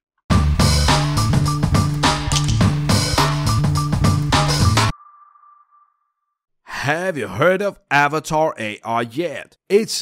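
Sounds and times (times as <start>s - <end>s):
person speaking: 6.7s - 10.0s.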